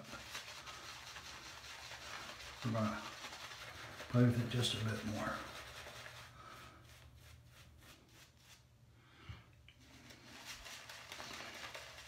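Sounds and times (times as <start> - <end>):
shaving brush scratching stubble: 0.0 - 8.7.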